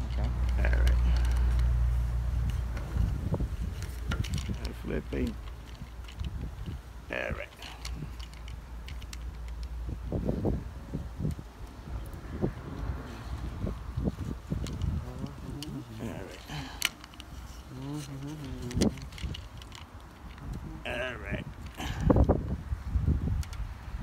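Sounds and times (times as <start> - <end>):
spline roller clicks and rubbing: 0.0 - 9.8, 12.8 - 20.6
faint voice: 7.1 - 8.1, 14.9 - 16.8, 17.7 - 19.2, 20.4 - 22.2.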